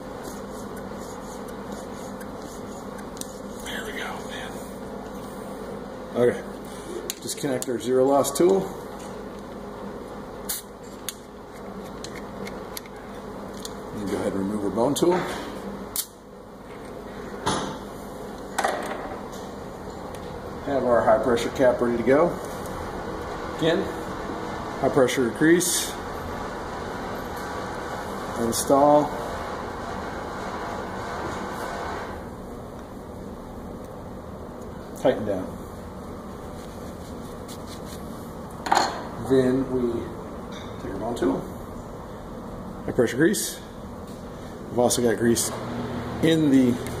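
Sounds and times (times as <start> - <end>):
low room hum: 0.0 - 47.0.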